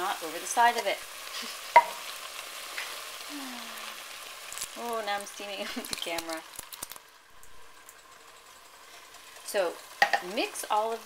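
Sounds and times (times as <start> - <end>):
vegetables sizzling in a pan: 0.0 - 11.0.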